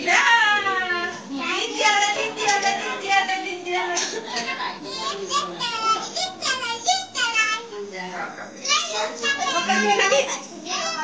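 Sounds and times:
children talking and calling out: 4.9 - 7.8, 8.6 - 11.0.

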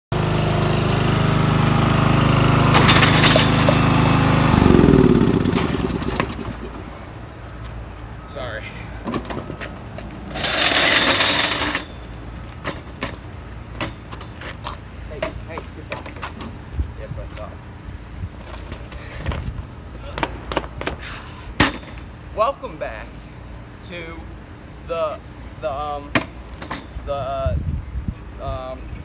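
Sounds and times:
lawn mower engine running: 0.1 - 7.2, 10.1 - 14.3.

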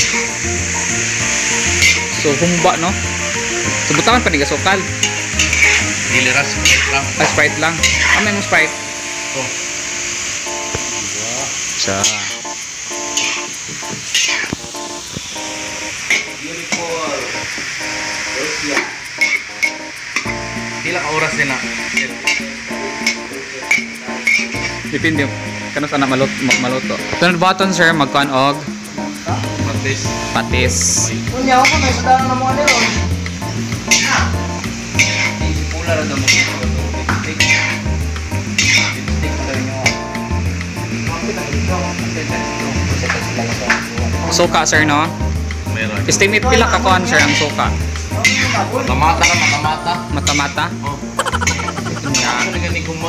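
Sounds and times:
background music with bass beat: 0.0 - 8.9, 26.8 - 53.0
meat sizzling in a wok: 0.0 - 53.0
metal ladle stirring: 1.2 - 2.2, 4.9 - 8.5, 23.7 - 24.8, 35.0 - 35.4, 38.6 - 39.0.

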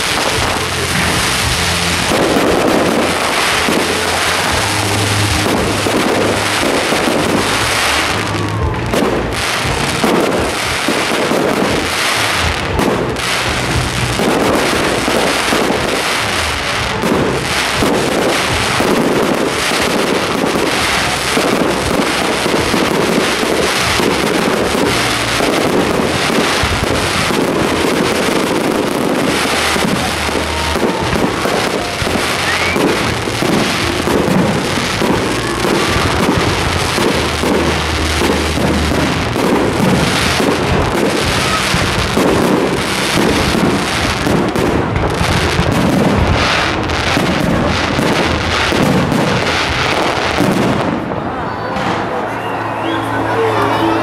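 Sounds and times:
fireworks shells bursting: 0.0 - 51.1.

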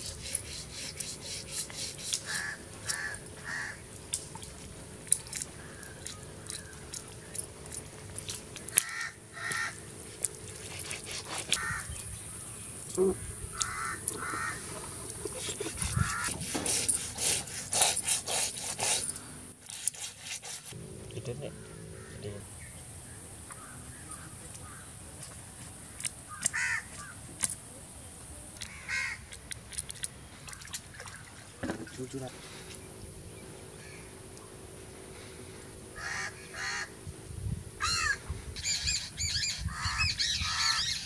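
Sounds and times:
scraping fish scales on stone: 0.0 - 3.0, 10.1 - 11.6, 15.2 - 20.8
bird cawing: 2.1 - 3.9, 5.5 - 7.0, 8.7 - 9.9, 11.5 - 12.0, 13.1 - 14.7, 16.0 - 16.3, 21.4 - 22.4, 23.5 - 24.9, 25.8 - 27.2, 28.7 - 29.2, 33.7 - 34.2, 35.1 - 37.0, 37.8 - 41.0.

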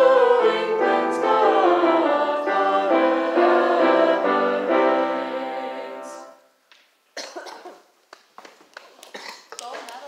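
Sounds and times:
people coughing: 7.2 - 7.9, 9.0 - 9.6.

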